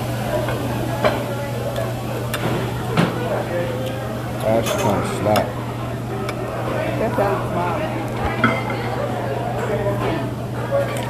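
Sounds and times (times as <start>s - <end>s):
indistinct background chatter: 0.0s - 11.0s.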